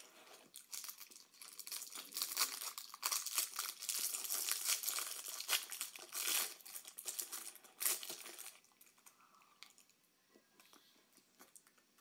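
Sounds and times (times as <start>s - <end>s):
plastic wrapper crinkling and tearing: 0.0s - 9.9s.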